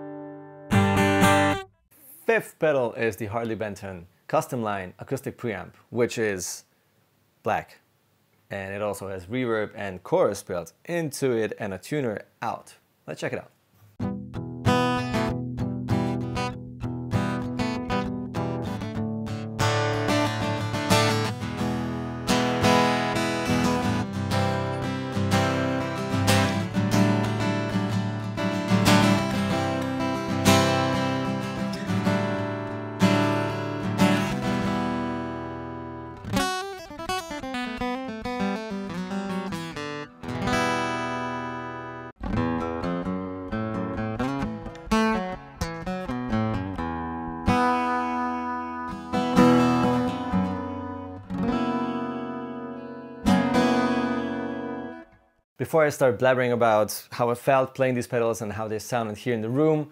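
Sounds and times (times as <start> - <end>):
acoustic guitar strumming: 0.0 - 1.8, 14.0 - 55.2.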